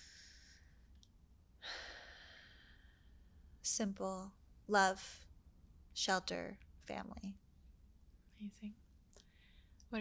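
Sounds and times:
person breathing softly: 0:00.0 - 0:01.0, 0:01.6 - 0:03.6, 0:09.2 - 0:09.9.

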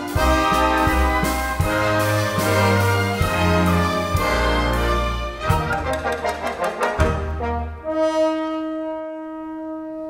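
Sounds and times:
orchestra playing rhythmic chords: 0:00.0 - 0:10.0.

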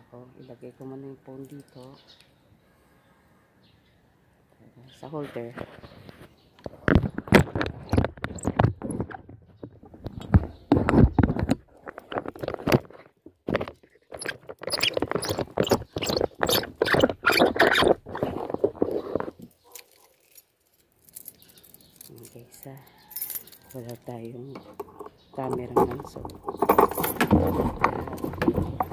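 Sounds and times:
phone handling scraping and knocking: 0:05.4 - 0:19.5, 0:24.6 - 0:28.9.

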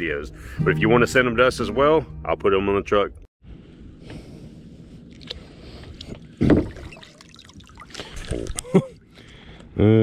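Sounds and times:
dull thump: 0:06.4 - 0:06.9.

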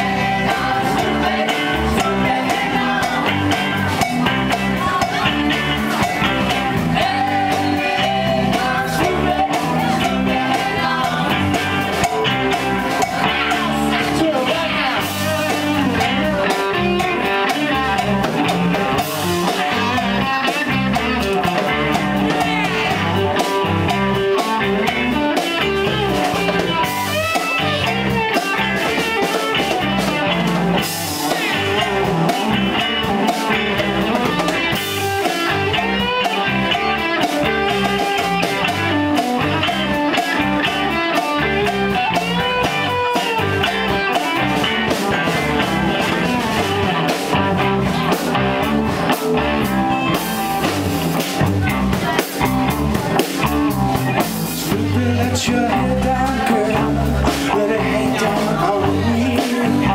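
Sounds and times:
blues-rock band playing: 0:00.0 - 0:59.9
electric guitar lead: 0:00.0 - 0:59.9.

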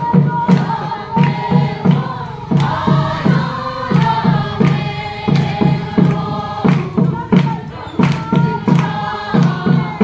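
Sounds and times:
group singing a chant: 0:00.0 - 0:10.0
steady low drum beat: 0:00.0 - 0:10.0.

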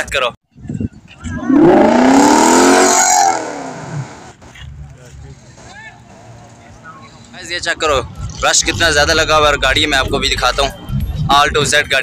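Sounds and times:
car engine revving: 0:01.4 - 0:04.4.

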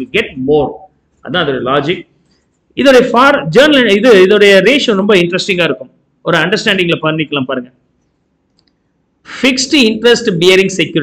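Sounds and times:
man speaking: 0:00.0 - 0:02.1, 0:02.8 - 0:07.7, 0:09.3 - 0:11.0
faint click: 0:08.5 - 0:08.8.

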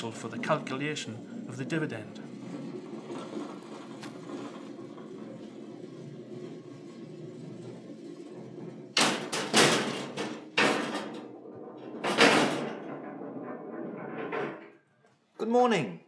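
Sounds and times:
ball rolling along ceiling rails: 0:00.0 - 0:15.6
loud knocks: 0:00.6 - 0:14.8.

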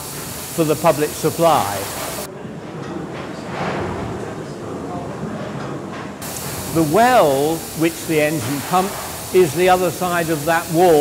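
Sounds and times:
steam engine clattering: 0:00.0 - 0:02.3, 0:05.6 - 0:11.0.

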